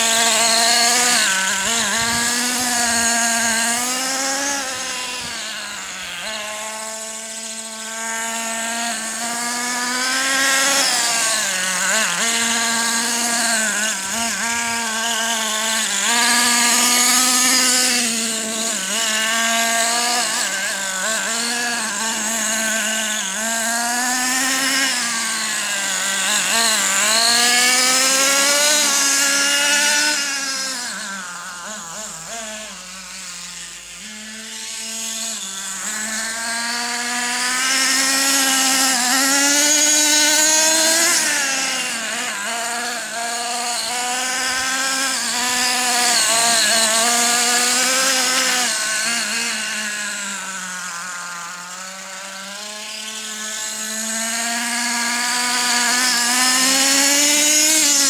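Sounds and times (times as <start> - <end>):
rc truck engine buzzing: 0.0 - 58.0.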